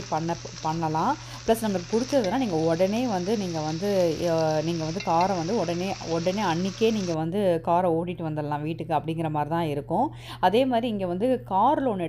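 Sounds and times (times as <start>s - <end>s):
greens sizzling in a pan: 0.0s - 7.2s
woman talking: 0.0s - 12.0s
steel spoon stirring: 1.9s - 3.4s, 4.3s - 7.1s.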